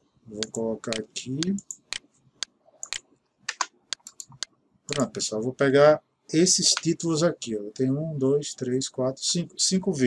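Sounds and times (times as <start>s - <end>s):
computer mouse clicks: 0.4s - 5.1s
keyboard clicks: 0.4s - 5.1s.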